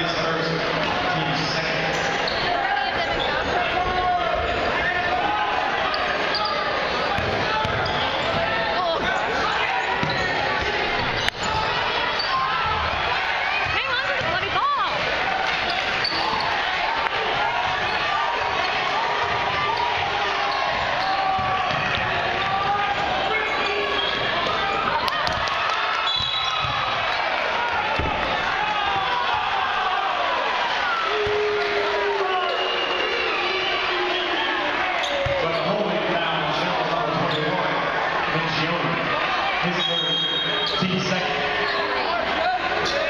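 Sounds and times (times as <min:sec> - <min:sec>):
crowd chatter and shouting: 0:00.0 - 0:43.0.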